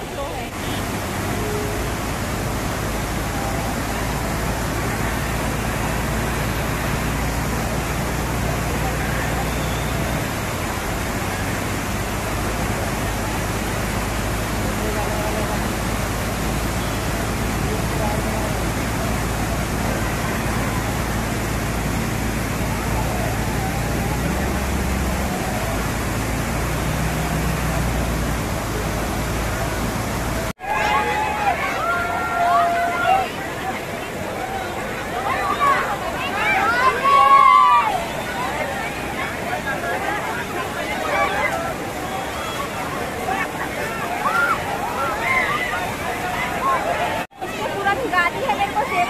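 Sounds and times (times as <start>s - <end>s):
crowd voices: 0.0s - 49.0s
water splashing: 0.0s - 49.0s
waterfall rushing: 0.0s - 49.0s.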